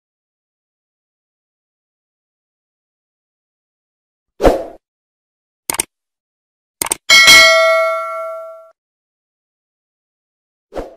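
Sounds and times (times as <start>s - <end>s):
quick double clicks: 5.7s - 5.9s, 6.8s - 7.1s
bell ding: 7.1s - 8.7s.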